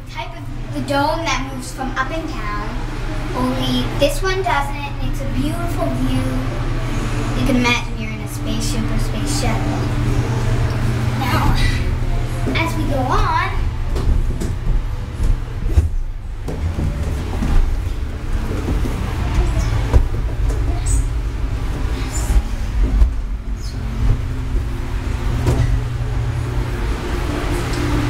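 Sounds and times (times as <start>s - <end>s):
irregular thumps: 13.7s - 26.4s
microphone handling rumble: 13.7s - 27.1s.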